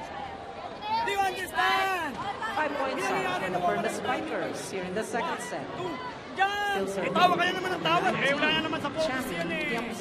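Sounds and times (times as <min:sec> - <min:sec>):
arena chatter: 0:00.0 - 0:10.0.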